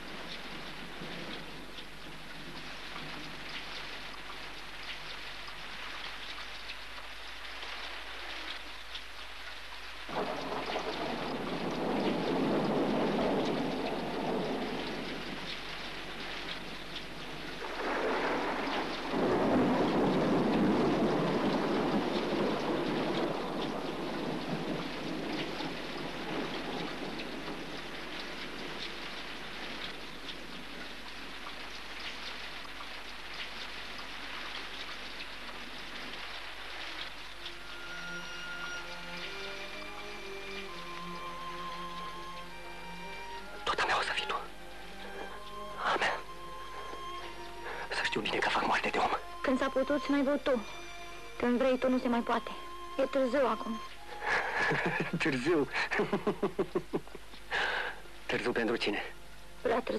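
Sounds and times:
rolling thunder: 0.0 - 4.5, 10.1 - 37.2
steady rain: 0.0 - 59.9.

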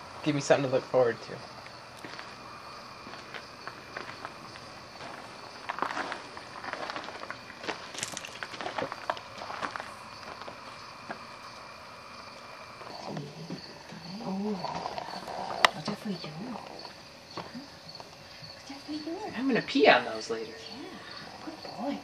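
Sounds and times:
insect chirring: 0.0 - 22.0
footsteps on gravel: 2.0 - 2.4, 3.0 - 11.3.

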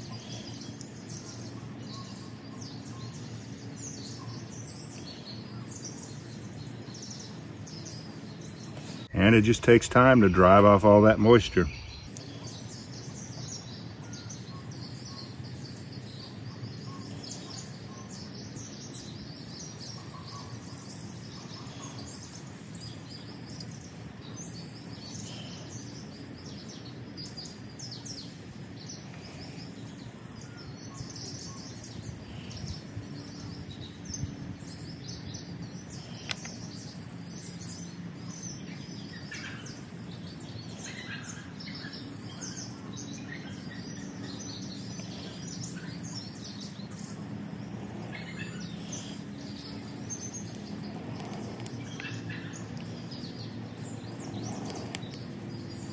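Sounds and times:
small birds chirping: 0.0 - 55.9
steady low hum: 0.0 - 55.9.

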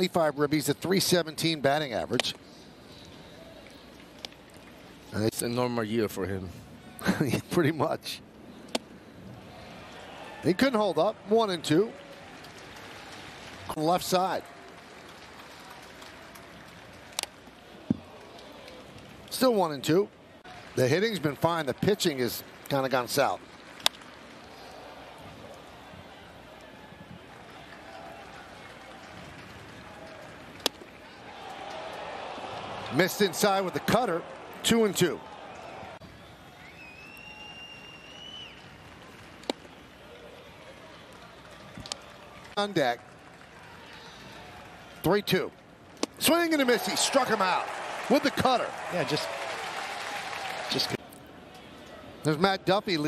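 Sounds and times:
high whistle: 36.2 - 38.7.

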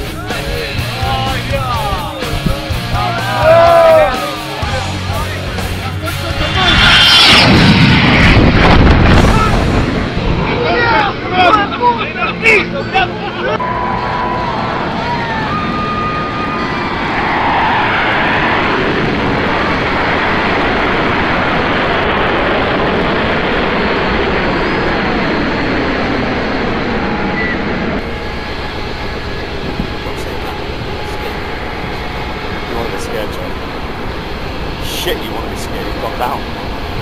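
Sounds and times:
low-flying fighter jet passing: 3.8 - 12.7, 13.3 - 37.0.

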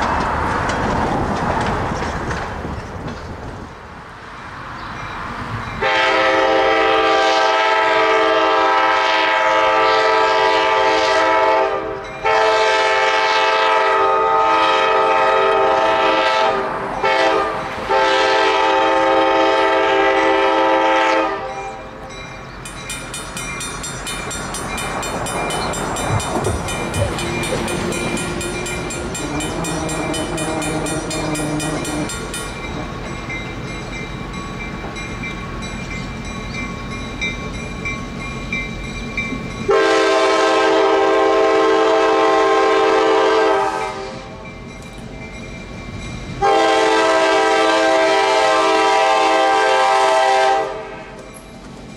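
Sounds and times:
train running on rails: 0.0 - 51.9
locomotive air horn: 5.8 - 21.9, 39.7 - 44.3, 46.4 - 51.2.

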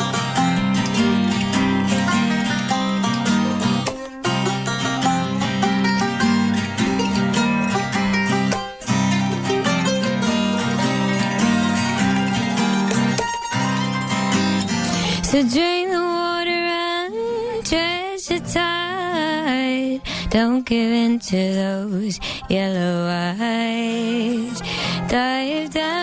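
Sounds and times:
acoustic folk band playing: 0.0 - 26.0
woman singing long wavering notes: 15.2 - 26.0.

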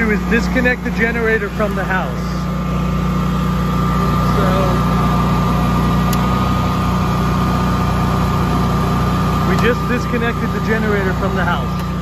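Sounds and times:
generator engine humming: 0.0 - 12.0.

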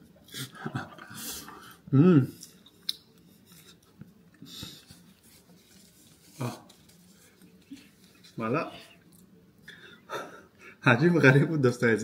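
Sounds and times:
man humming murmur: 1.9 - 2.4
paper napkin rustling: 4.8 - 8.9.

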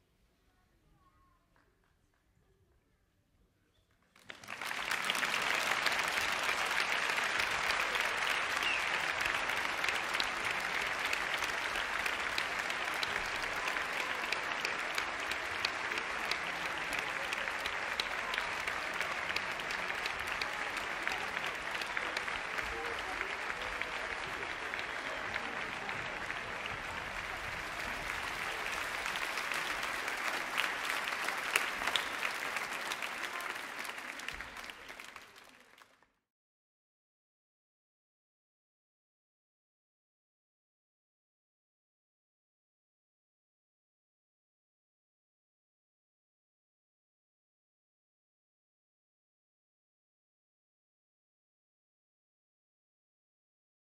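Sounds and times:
audience applauding: 4.2 - 36.1.

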